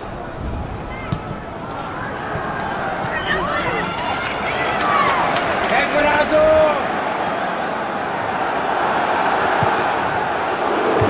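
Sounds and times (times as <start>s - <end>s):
rushing outdoor background noise: 0.0s - 11.0s.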